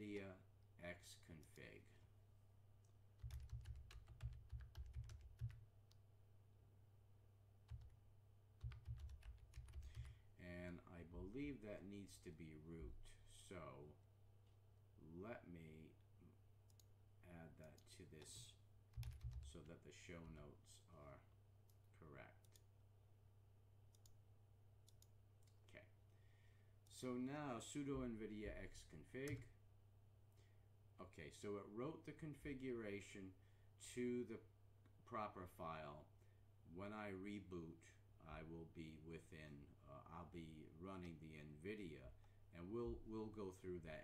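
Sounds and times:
computer keyboard typing: 3.2 - 5.6, 7.7 - 8.0, 8.6 - 10.1, 17.7 - 19.5.

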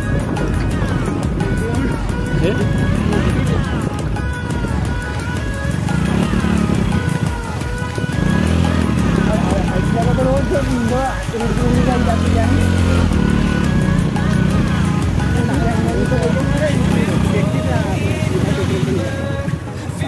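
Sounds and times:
motorcycle engine running: 0.0 - 20.0
song with singing voice: 0.0 - 20.0.

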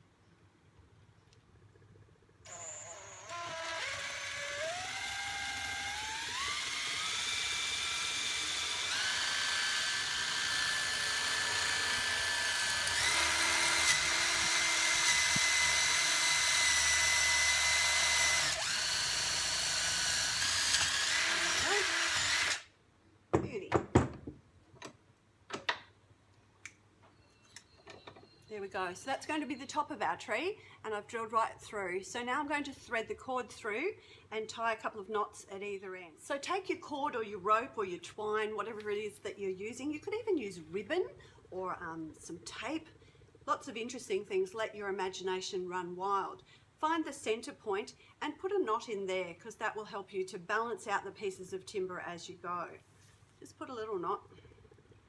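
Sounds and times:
cordless drill boring wood: 2.5 - 22.7
knocks: 23.3 - 24.4.

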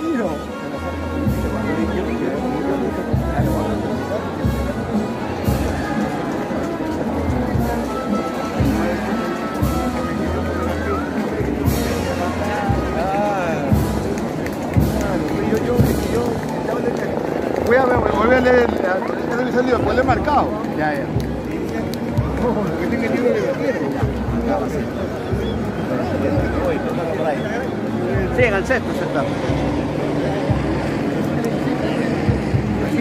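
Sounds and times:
band playing music: 0.0 - 19.2
crowd chatter: 0.0 - 33.0.

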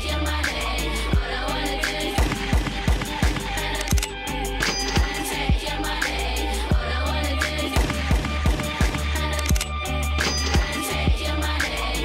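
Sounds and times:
music with kick-drum beat: 0.0 - 12.0.

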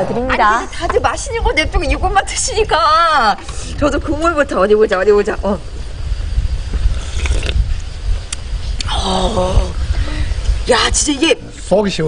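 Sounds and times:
low rumble: 0.0 - 11.6
slurping from metal spoon: 6.9 - 7.7.

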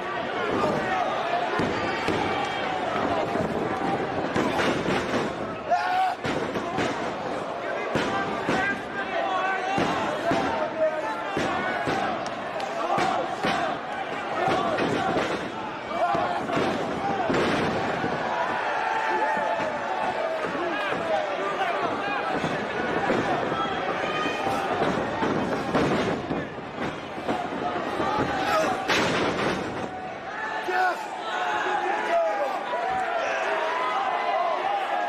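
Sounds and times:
crowd shouting and chanting: 0.0 - 35.0.

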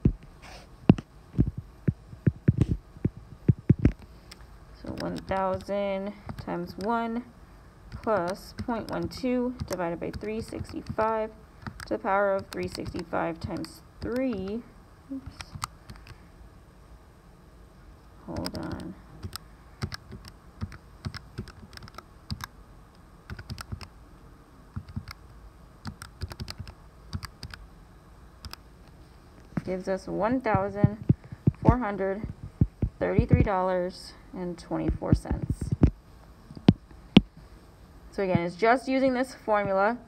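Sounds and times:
calculator keys tapping: 0.9 - 7.0, 7.9 - 14.6, 15.2 - 16.2, 18.3 - 22.5, 23.3 - 23.9, 24.8 - 25.2, 25.8 - 27.6, 30.4 - 33.6.

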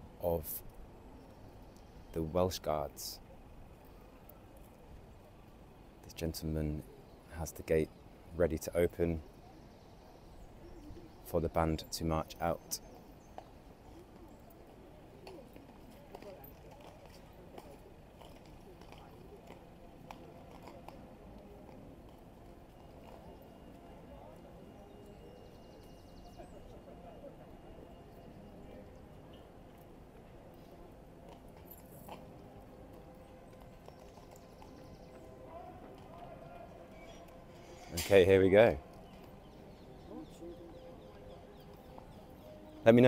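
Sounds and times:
murmur of voices: 2.2 - 43.0
horse hooves clip-clopping on road: 13.4 - 24.4, 29.6 - 36.8.

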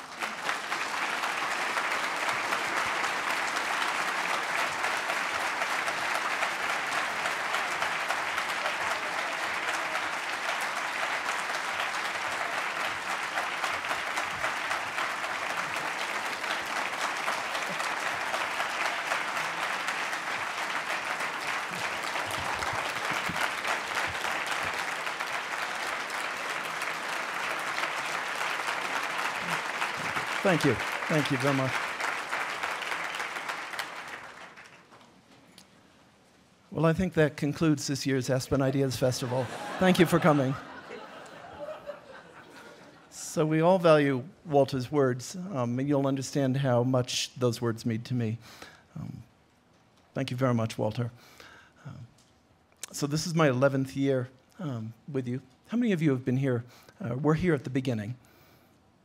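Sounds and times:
audience applauding: 0.0 - 35.1, 38.6 - 43.0
man saying thank you: 30.3 - 31.8, 36.8 - 40.6, 43.2 - 49.2, 50.2 - 51.1, 52.8 - 58.2.

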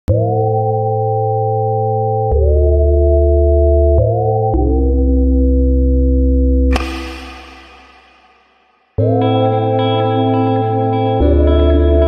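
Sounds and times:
synthesizer chords over deep bass: 0.1 - 12.0.

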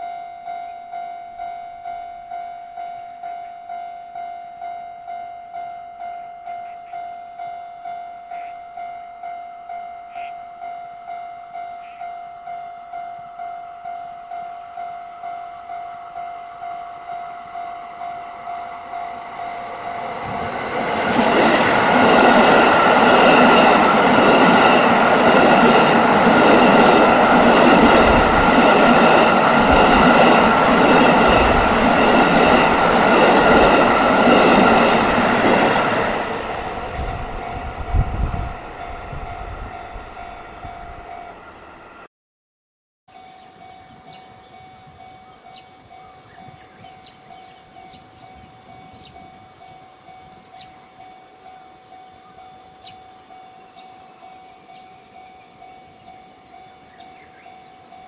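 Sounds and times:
level crossing warning bell: 0.0 - 41.5, 43.1 - 58.0
diesel train engines: 0.0 - 42.0, 43.1 - 58.0
train wheels on rails: 14.8 - 42.0.

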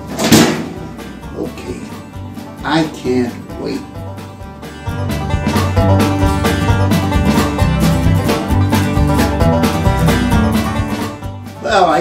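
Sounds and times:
oven door banging shut: 0.0 - 1.0
background music: 0.0 - 12.0.

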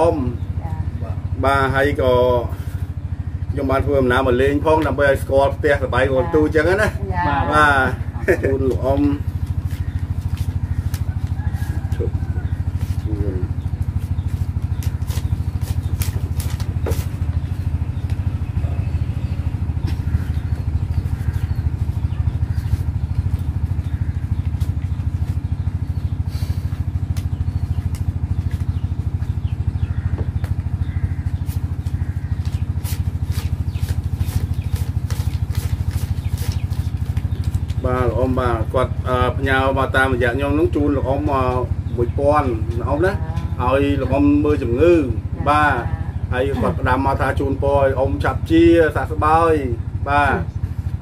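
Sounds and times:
small engine idling: 0.0 - 51.0.

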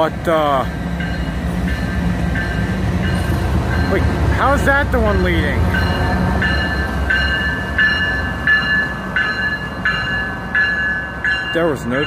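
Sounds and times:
diesel locomotive rumbling: 0.0 - 12.0
bell-like tone: 5.8 - 12.0.

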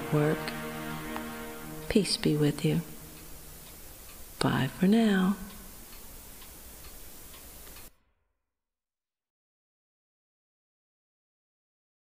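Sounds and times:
low room hiss: 0.0 - 8.0
faint regular ticking: 0.4 - 7.9.

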